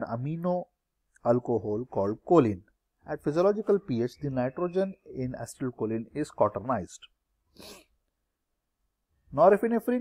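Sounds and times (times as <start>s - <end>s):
soft intake of breath: 7.5s - 8.0s.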